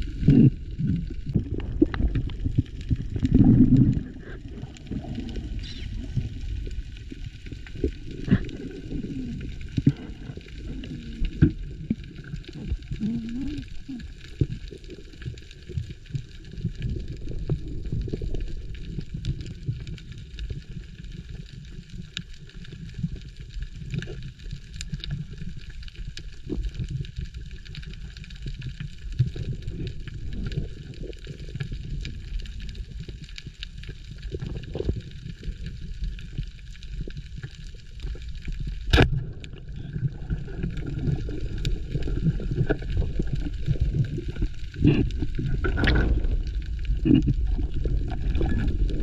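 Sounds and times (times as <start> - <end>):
underwater water rumble: 0.0 - 49.0.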